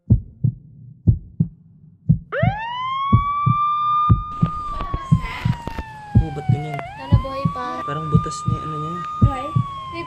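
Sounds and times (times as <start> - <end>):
low double thumps: 0.0 - 10.0
siren wail: 2.3 - 10.0.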